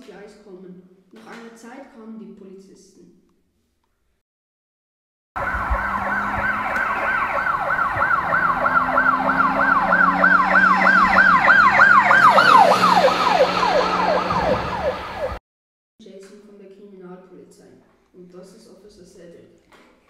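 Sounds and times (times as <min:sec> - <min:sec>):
police siren wailing: 0:05.4 - 0:15.4.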